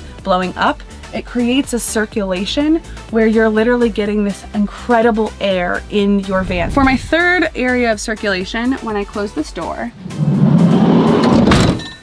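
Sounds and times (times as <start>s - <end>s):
sliding van door rolling: 10.0s - 12.0s
van door slamming: 11.1s - 12.0s.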